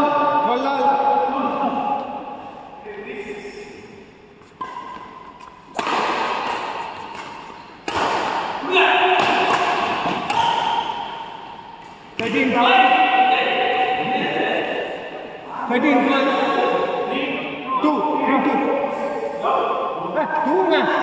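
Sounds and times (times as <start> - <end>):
racket hitting shuttlecock: 4.4 - 12.4.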